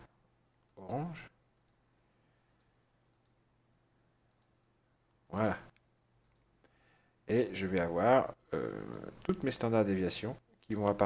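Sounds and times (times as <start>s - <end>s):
low steady hum: 0.0s - 11.0s
computer mouse clicks: 1.6s - 1.8s, 2.4s - 3.4s, 4.3s - 4.6s, 5.2s - 6.8s, 7.4s - 7.8s, 8.6s - 9.5s.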